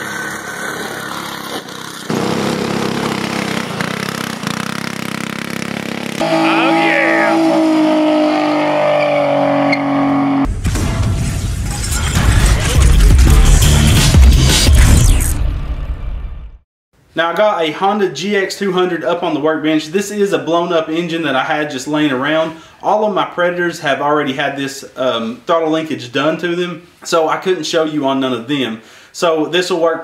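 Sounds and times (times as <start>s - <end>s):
go-kart engine running: 0.0s - 8.8s
car engine revving: 0.0s - 10.5s
tyre squeal: 6.2s - 10.4s.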